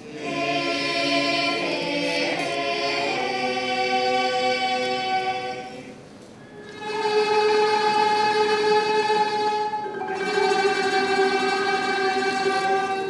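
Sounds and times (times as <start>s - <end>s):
choir singing a cappella: 0.0s - 13.0s.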